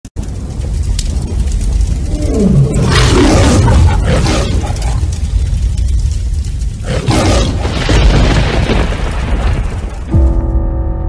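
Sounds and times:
low rumble: 0.2 - 11.0
big cat roaring: 2.0 - 5.4, 6.8 - 7.8.

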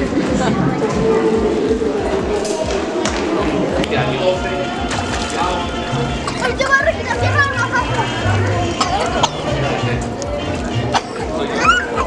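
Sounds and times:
background music with bass: 0.0 - 12.0
children calling and chattering: 0.0 - 12.0.

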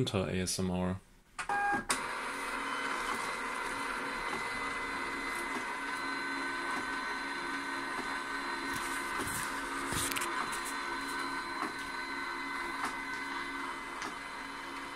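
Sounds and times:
printer feed motor whirring: 1.5 - 14.9
label printer blip: 2.9 - 14.4.

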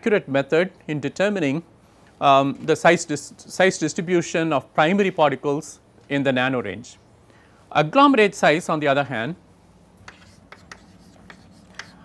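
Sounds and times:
chalk tapping and scratching: 10.0 - 12.0.

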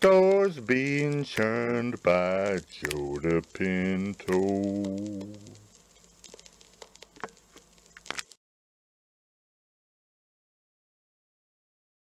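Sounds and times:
low hum: 0.0 - 5.8
small clicks: 0.0 - 8.4.

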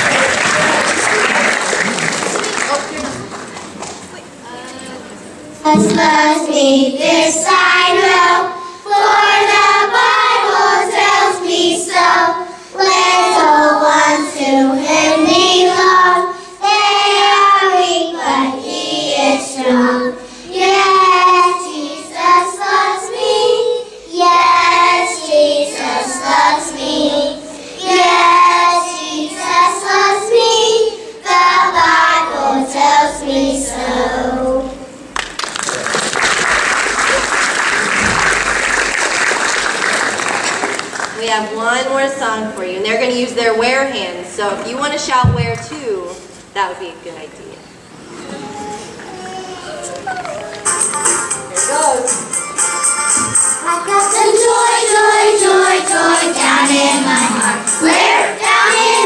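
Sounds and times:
applause: 0.0 - 4.1, 35.2 - 41.2
children's choir singing: 5.6 - 35.1, 50.8 - 59.0.

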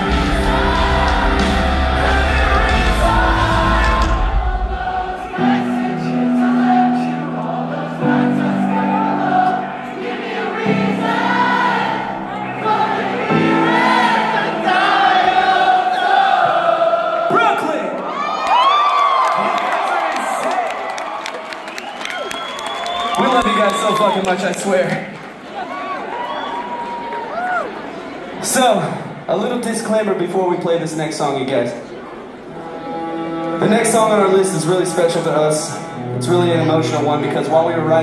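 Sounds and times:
live rock band: 0.0 - 4.6
crowd singing along: 0.0 - 18.0, 32.2 - 36.2
crowd cheering and whooping: 18.0 - 24.8, 25.4 - 28.2.

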